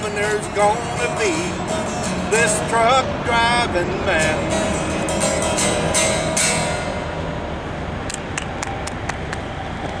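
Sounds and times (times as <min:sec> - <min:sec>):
acoustic guitar chords ringing: 0:00.0 - 0:08.0.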